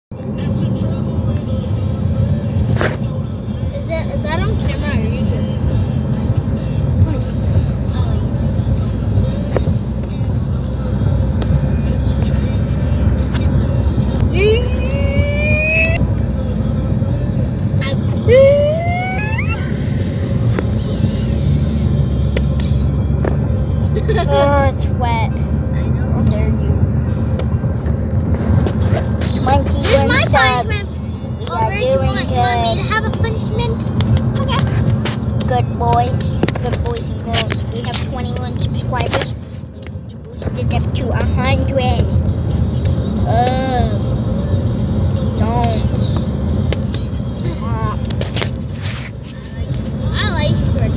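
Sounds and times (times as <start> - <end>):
car cabin road rumble: 0.1 - 50.9
child's high-pitched voice: 3.8 - 5.2, 24.1 - 25.3, 29.3 - 33.8, 43.3 - 44.0, 50.1 - 50.9
voice-like sound with bending pitch: 14.2 - 16.1, 17.8 - 21.9.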